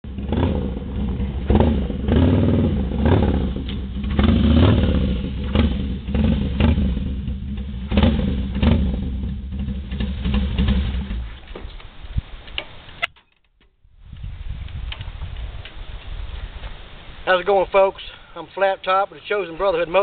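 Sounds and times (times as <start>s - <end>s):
motorcycle engine revving: 0.0s - 11.5s.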